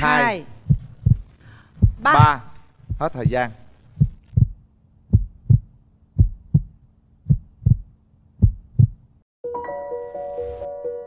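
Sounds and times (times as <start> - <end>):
heartbeat double thump: 0.6 - 3.4, 4.0 - 9.1.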